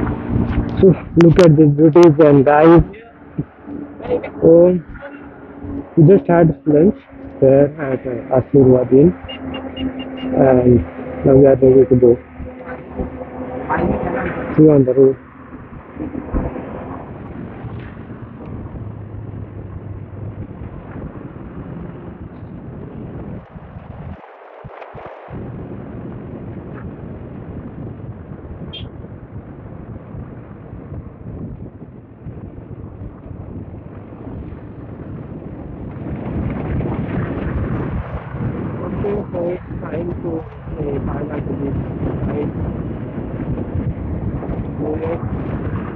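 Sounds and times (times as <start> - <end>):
motorcycle running: 0.0 - 45.9
road noise: 0.0 - 45.9
wind buffeting microphone: 0.0 - 45.9.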